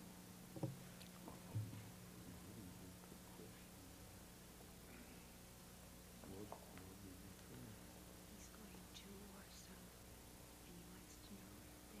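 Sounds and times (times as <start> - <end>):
faint whispered speech: 2.3 - 4.0, 6.2 - 9.9, 10.6 - 12.0.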